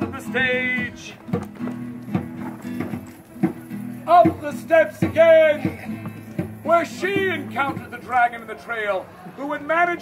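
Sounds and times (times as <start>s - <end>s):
strummed plucked string chords: 0.0s - 8.2s.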